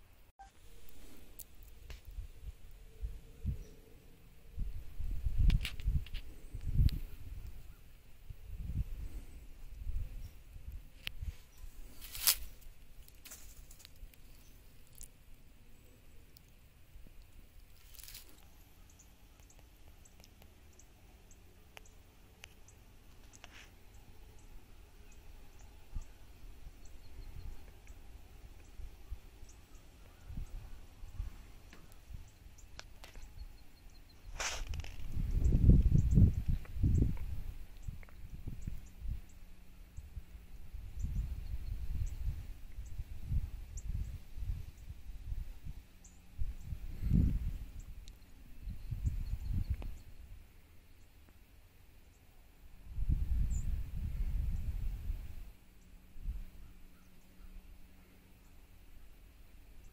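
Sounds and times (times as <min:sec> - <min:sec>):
low rumbling on microphone: 0:34.7 - 0:50.4, 0:52.8 - 0:55.5.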